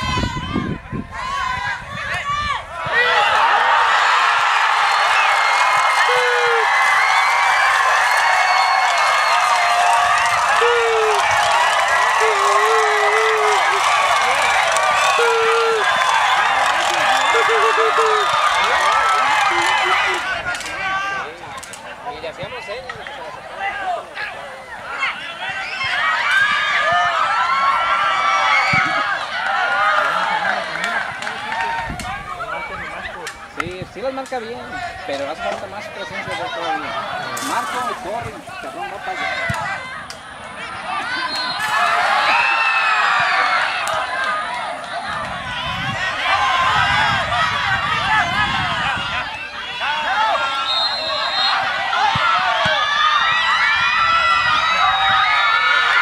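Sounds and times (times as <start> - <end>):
crowd shouting and cheering: 0.0 - 56.0
scattered shouts and chatter: 0.0 - 56.0.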